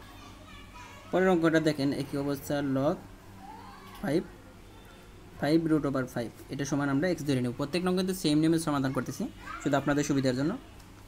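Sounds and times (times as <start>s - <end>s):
child's high-pitched voice: 0.0s - 1.2s, 8.8s - 10.2s.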